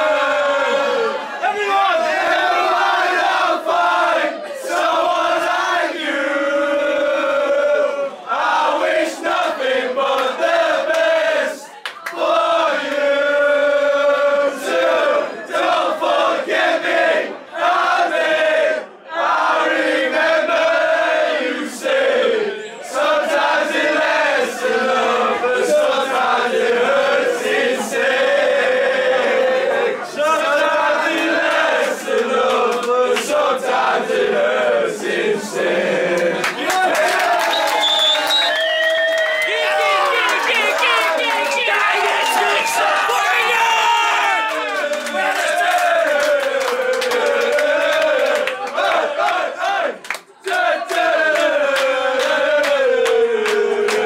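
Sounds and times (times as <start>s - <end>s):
men singing a chant in unison: 12.2s - 37.3s, 44.7s - 54.0s.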